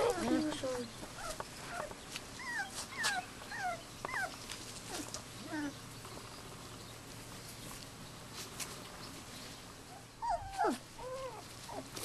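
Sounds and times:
puppies whimpering: 0.0 - 5.8, 9.9 - 12.0.

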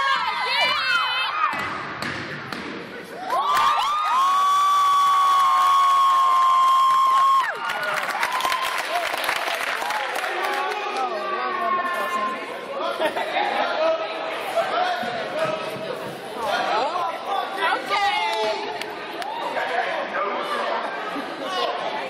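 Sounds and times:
crowd chatter: 0.0 - 3.5, 8.9 - 22.0
crowd cheering: 3.2 - 11.6, 18.0 - 19.9.

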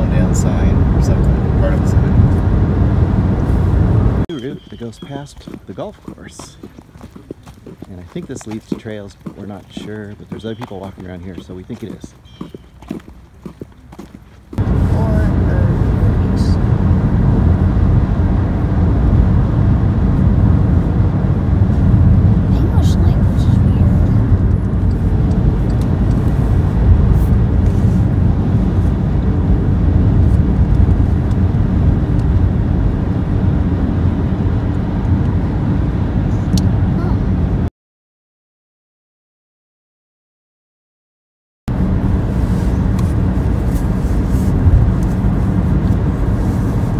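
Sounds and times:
wind and road noise in car: 0.0 - 37.7, 41.7 - 46.9.

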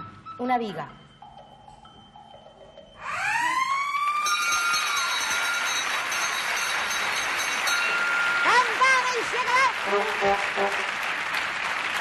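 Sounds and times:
game-show siren: 3.0 - 5.6.

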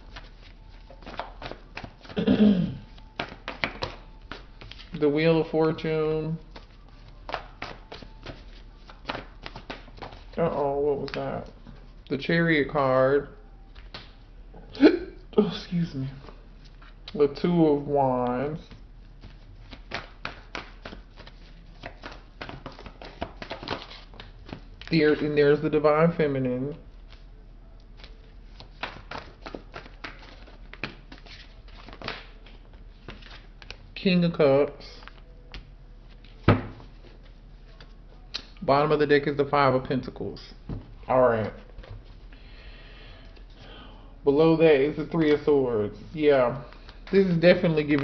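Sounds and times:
cards being shuffled: 0.0 - 2.2, 2.9 - 5.0, 6.4 - 11.6, 18.6 - 25.4, 27.9 - 33.8, 46.1 - 48.0.

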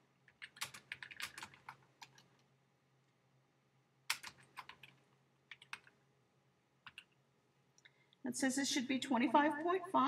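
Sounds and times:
typing on computer keyboard: 0.3 - 2.4, 4.1 - 6.0, 6.8 - 7.2.

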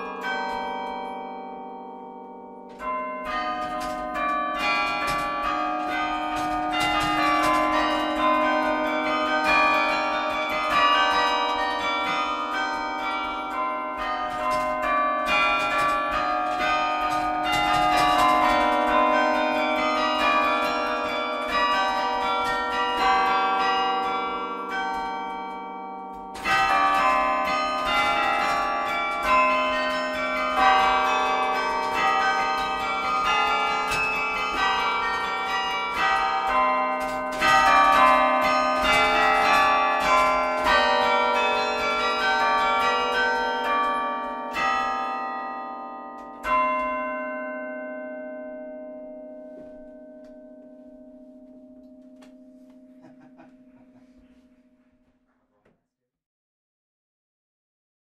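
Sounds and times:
carillon bells playing: 0.0 - 54.8.

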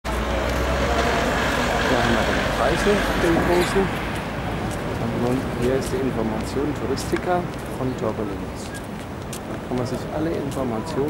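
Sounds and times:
road traffic rumble: 0.0 - 11.0
faint voices: 0.1 - 11.0.

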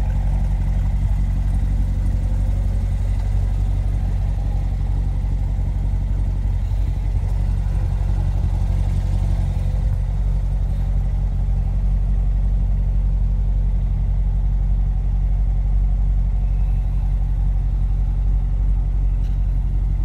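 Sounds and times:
car engine idling: 0.0 - 20.0.

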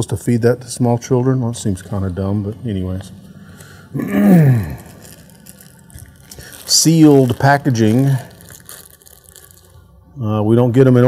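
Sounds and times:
plastic bag crinkling and rustling: 4.0 - 10.0.

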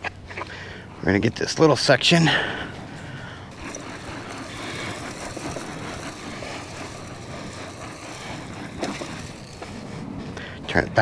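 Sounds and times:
broadcast spreader pushed over grass: 2.7 - 11.0.

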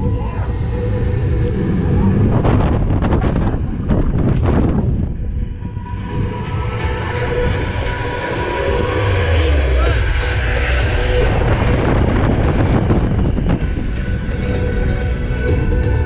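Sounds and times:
roller coaster wheels rumbling: 0.0 - 16.0
wind buffeting microphone: 0.0 - 16.0
roller coaster clattering: 0.8 - 5.4.

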